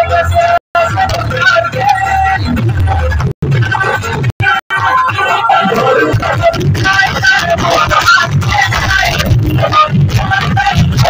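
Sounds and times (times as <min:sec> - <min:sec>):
dance music with heavy bass: 0:00.0 - 0:11.0.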